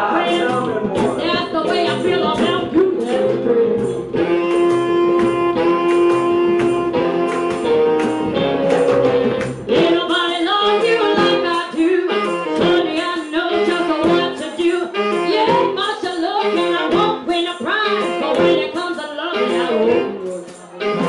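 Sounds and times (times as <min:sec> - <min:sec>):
woman singing: 0:00.0 - 0:04.4, 0:09.7 - 0:21.0
steady drum beat: 0:00.0 - 0:19.0
electric guitar: 0:00.0 - 0:21.0.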